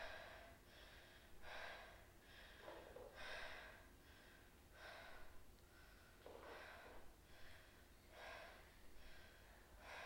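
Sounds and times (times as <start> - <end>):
faint slow breathing: 0.0 - 10.0.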